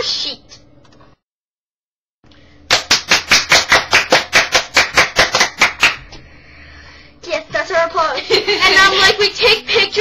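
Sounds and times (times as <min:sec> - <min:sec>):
hands clapping in applause: 0:02.7 - 0:06.1.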